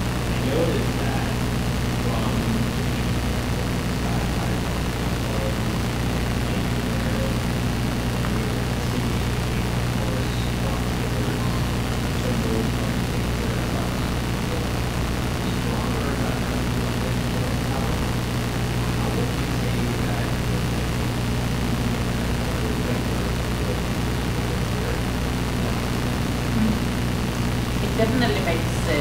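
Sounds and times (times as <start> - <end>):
distant person speaking: 0.0 - 29.0
low electrical hum: 0.0 - 29.0.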